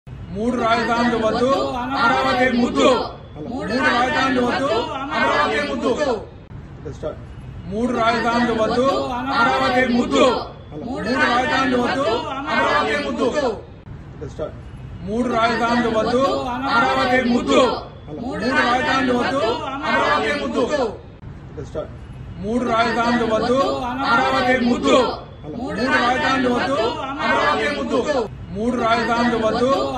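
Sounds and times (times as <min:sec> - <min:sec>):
voices chanting in unison: 0:00.4 - 0:06.2, 0:07.8 - 0:13.6, 0:15.2 - 0:21.0, 0:22.5 - 0:29.9.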